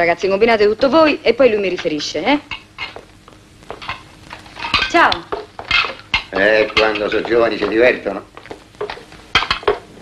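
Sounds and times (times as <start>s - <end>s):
dishes and cutlery clinking: 1.8s - 3.0s, 3.7s - 9.9s.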